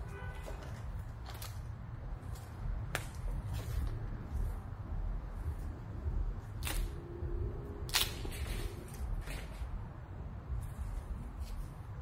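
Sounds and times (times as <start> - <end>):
tree limb snapping: 6.6 - 7.0, 7.8 - 8.5.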